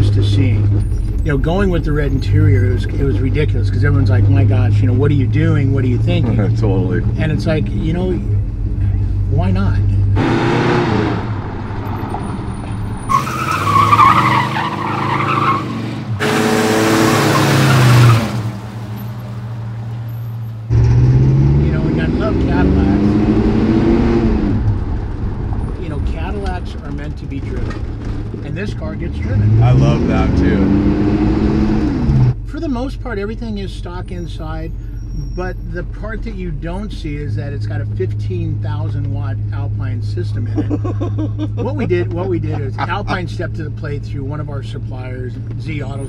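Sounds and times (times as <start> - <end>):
car engine revving hard: 10.1 - 12.3, 13.1 - 18.6, 20.7 - 24.9, 29.1 - 32.4
tires squealing on pavement: 10.2 - 26.3, 34.1 - 35.9.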